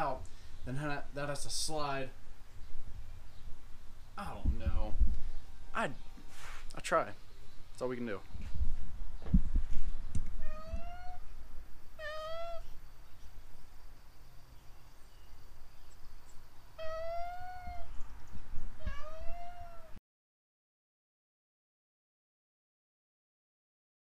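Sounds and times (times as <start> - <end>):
cat meowing: 10.4 - 11.3, 12.0 - 12.8, 16.8 - 17.9, 18.8 - 20.0.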